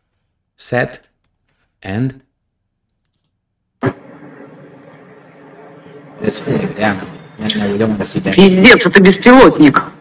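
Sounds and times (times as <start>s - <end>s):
low hum: 3.8s - 10.0s
muffled outdoor noise: 3.8s - 10.0s.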